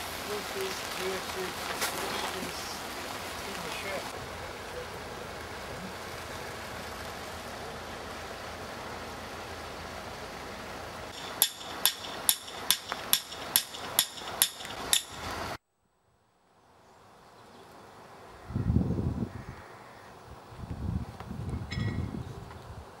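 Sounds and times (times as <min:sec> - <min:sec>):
steady outdoor hiss: 0:00.0 - 0:23.0
sharp ringing knocks: 0:11.1 - 0:15.2, 0:21.7 - 0:22.1.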